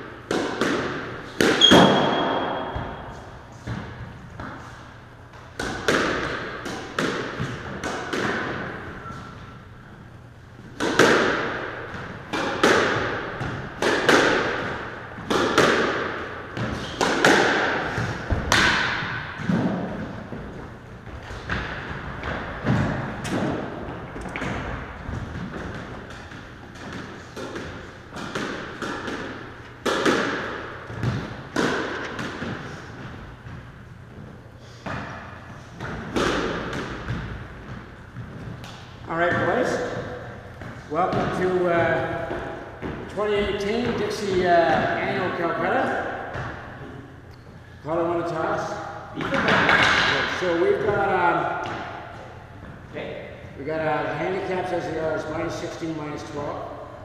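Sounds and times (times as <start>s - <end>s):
racket striking squash ball: 0.0s - 9.8s, 10.6s - 47.2s, 48.2s - 53.5s.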